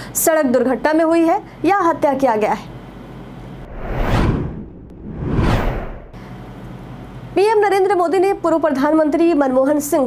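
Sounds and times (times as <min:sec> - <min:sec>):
whoosh sound effect: 0:03.6 - 0:06.2.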